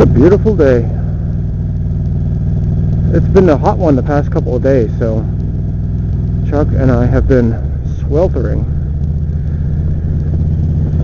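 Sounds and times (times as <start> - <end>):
motorcycle engine running: 0.0 - 11.0
wind and road noise: 0.0 - 11.0.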